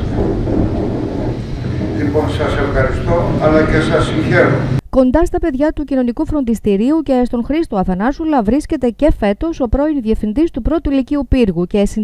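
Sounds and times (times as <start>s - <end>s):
wind buffeting microphone: 0.0s - 4.8s.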